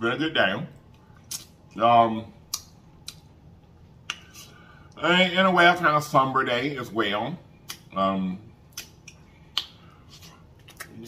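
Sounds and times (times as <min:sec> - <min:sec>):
lips and tongue smacking: 0:08.7 - 0:11.0.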